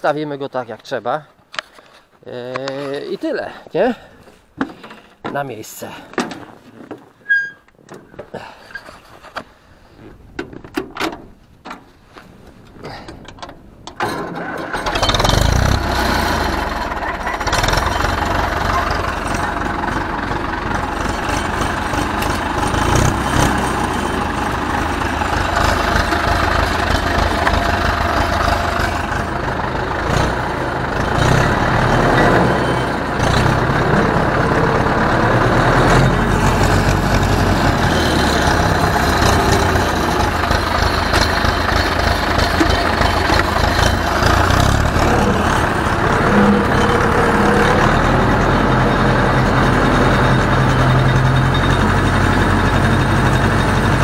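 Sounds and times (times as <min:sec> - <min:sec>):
tractor diesel engine running: 0:12.5 - 0:54.0.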